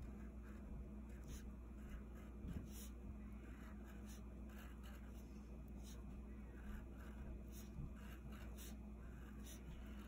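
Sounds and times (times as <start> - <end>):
low steady hum: 0.0 - 10.0
crayon scratching on paper: 0.1 - 5.2, 5.8 - 10.0.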